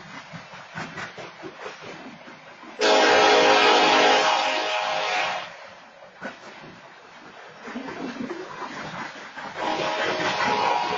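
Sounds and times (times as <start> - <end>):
train wheels clattering on rails: 0.0 - 10.9
loud train horn blast: 2.8 - 5.6, 9.6 - 10.9.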